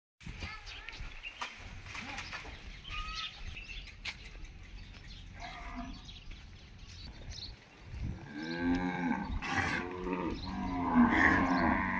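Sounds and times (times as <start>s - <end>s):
cows mooing: 5.4s - 6.1s, 8.2s - 11.9s.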